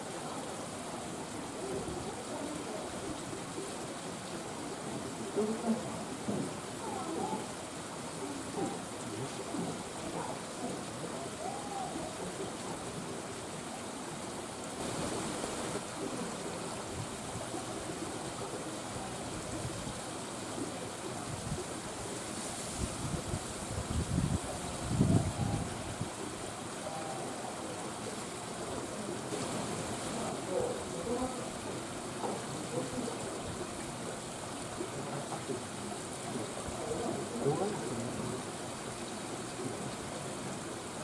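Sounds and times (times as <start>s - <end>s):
faint distant voices: 0.0s - 23.2s, 24.2s - 40.9s.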